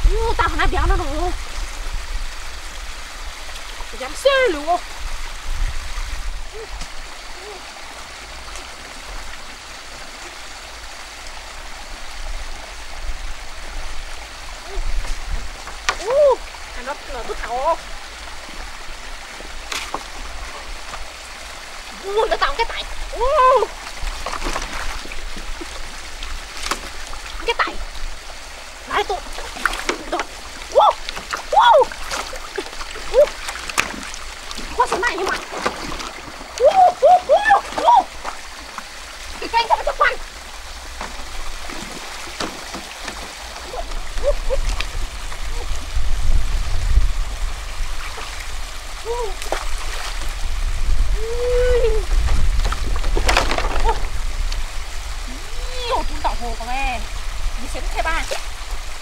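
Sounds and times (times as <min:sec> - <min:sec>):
flowing stream rushing: 0:00.0 - 0:59.0
heavy low water rumble: 0:00.0 - 0:59.0
water splashing: 0:00.0 - 0:59.0.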